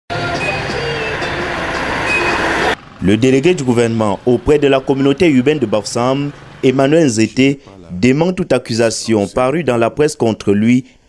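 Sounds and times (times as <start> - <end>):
car and motorcycle engines: 0.1 - 9.5
indistinct voices: 0.1 - 9.7
tones: 2.0 - 2.8.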